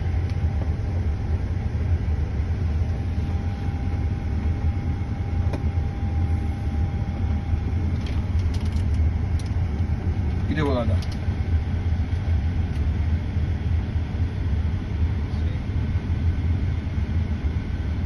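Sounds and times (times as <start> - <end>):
low cockpit rumble: 0.0 - 18.0.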